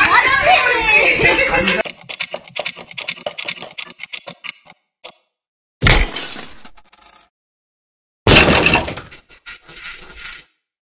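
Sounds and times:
crash: 8.3s - 9.2s.

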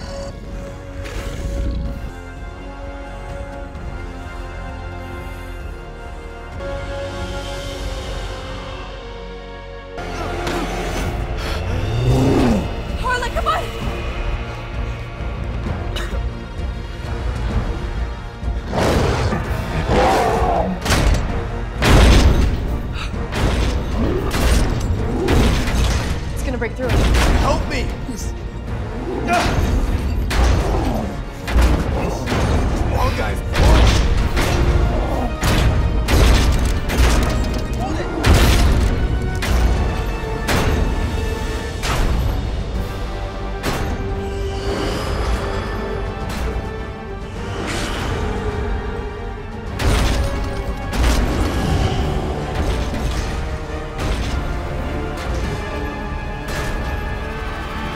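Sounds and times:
tense film score: 0.0s - 57.9s.

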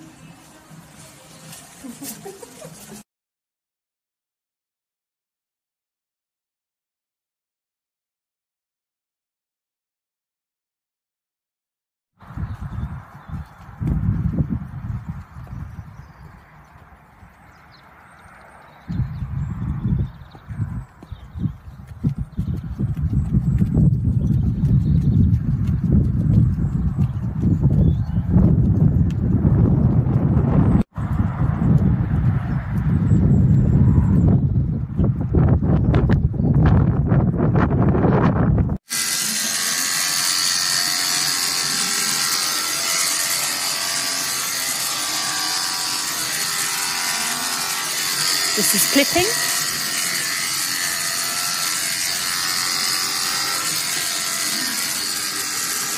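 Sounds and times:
horse hoofbeats: 12.3s - 18.8s, 20.2s - 33.6s
electric clippers buzzing: 38.9s - 55.9s.

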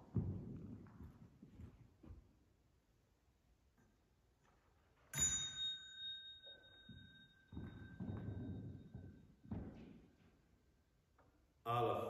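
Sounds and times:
small bell ringing: 5.1s - 9.4s.

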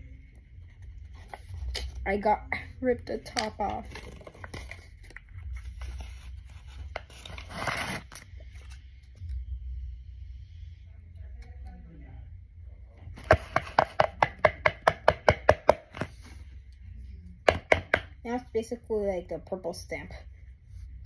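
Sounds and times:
marker tapping on paper: 13.2s - 16.1s, 17.5s - 18.1s.

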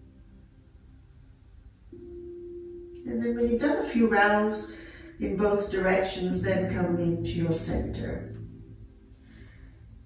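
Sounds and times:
steady pure low tone: 0.0s - 10.0s.

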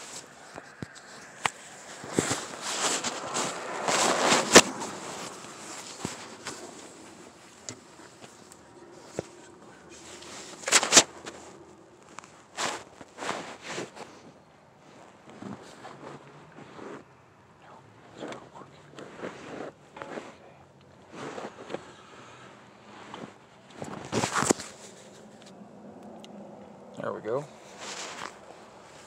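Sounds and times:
phone rustling and scraping: 0.0s - 17.2s, 18.2s - 25.6s, 27.5s - 29.0s.

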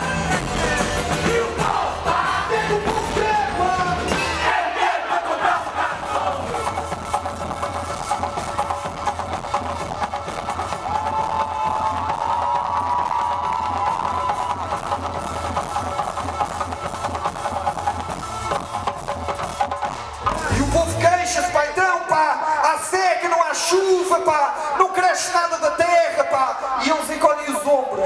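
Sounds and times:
heavy drum percussion: 14.1s - 22.6s.

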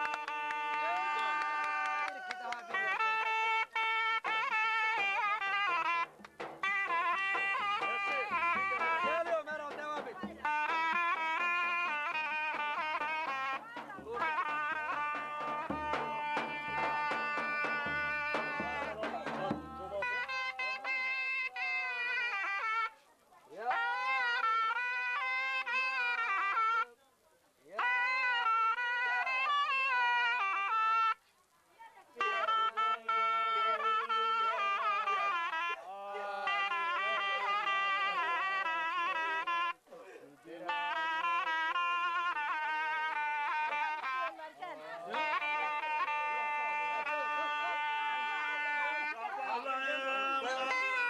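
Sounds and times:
zurna playing: 0.0s - 27.0s, 27.7s - 51.0s
low drum thumps: 6.0s - 11.0s, 12.5s - 20.2s
man singing wavering phrases: 48.7s - 51.0s.

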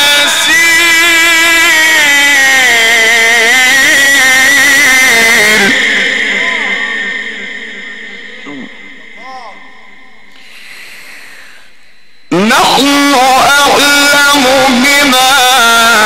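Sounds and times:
amplified voice reciting a long note: 0.0s - 16.0s
echo: 0.0s - 16.0s.

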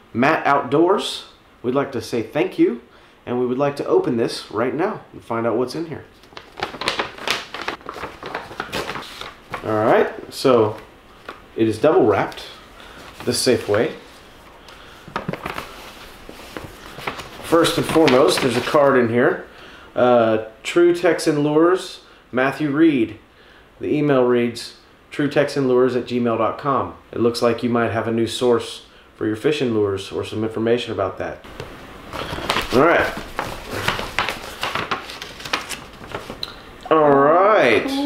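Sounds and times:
paper envelope rustling: 6.1s - 11.4s, 12.2s - 19.1s, 31.5s - 36.6s
paper crackles: 6.2s - 11.4s, 12.2s - 19.1s, 31.5s - 36.6s.

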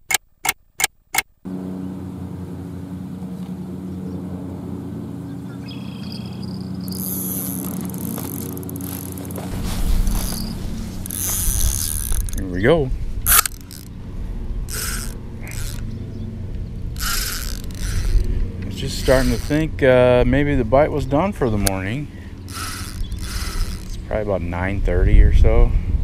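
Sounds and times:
steady low hum: 1.5s - 26.0s.

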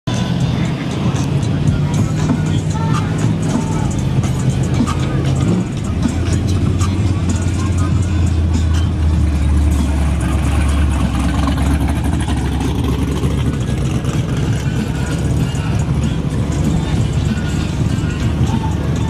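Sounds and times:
background voices: 0.3s - 19.0s
car engine deep low note: 1.2s - 19.0s.

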